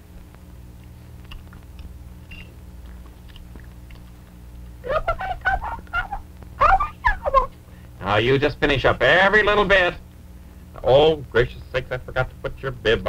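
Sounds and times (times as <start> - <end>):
steady low hum: 0.0 - 13.0
puppet voice babbling: 4.9 - 7.5.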